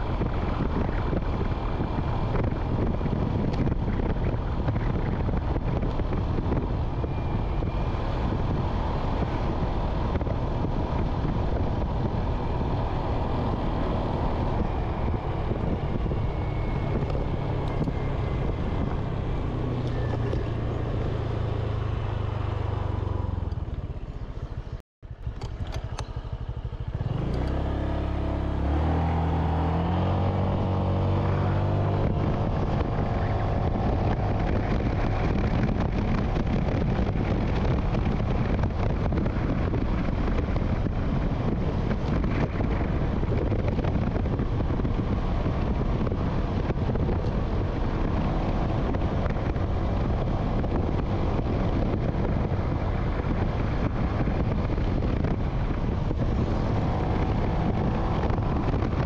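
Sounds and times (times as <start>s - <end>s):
motorbike engine: 0.0s - 59.0s
wind noise on microphone: 0.0s - 59.0s.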